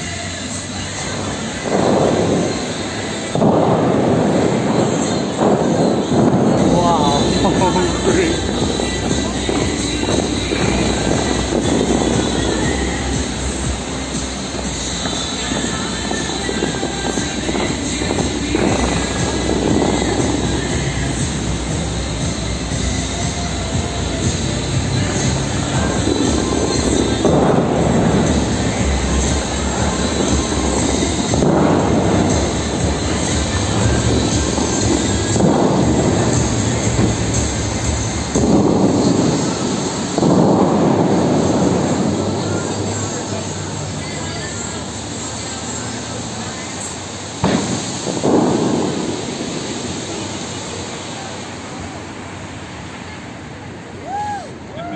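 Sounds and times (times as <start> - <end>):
fountain show music: 0.0 - 54.9
fountain water jets roaring: 0.0 - 54.9.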